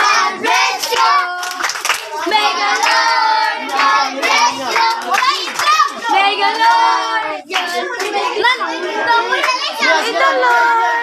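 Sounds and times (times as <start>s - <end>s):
children singing together: 0.0s - 11.0s
hand clapping: 0.5s - 6.8s.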